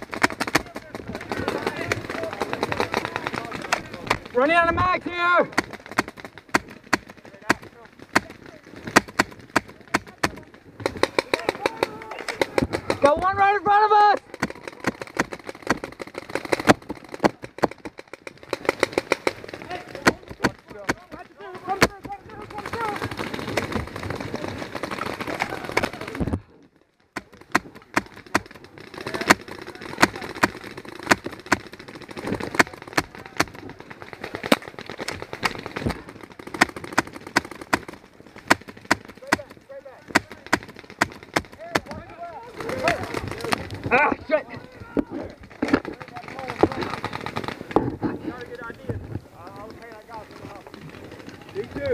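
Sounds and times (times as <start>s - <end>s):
paintball markers firing: 0.0s - 13.4s, 14.0s - 26.4s, 27.1s - 48.1s.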